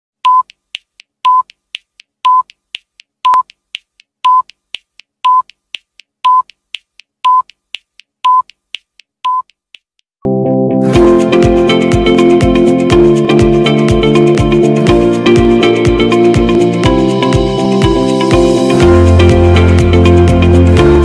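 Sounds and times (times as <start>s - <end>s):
short electronic beeps: 0.3s - 0.5s, 1.3s - 1.5s, 2.3s - 2.5s, 3.3s - 3.5s, 6.3s - 6.5s, 9.3s - 9.5s.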